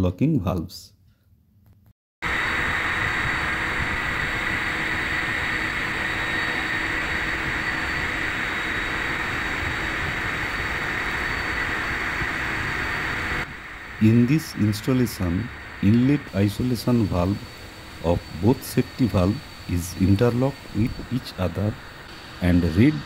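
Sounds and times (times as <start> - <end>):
faint machine hums and whines: 2.2 - 23.0.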